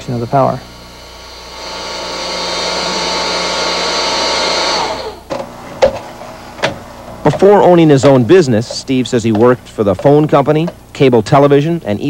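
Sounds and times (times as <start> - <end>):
small fan blowing air: 0.0 - 12.0.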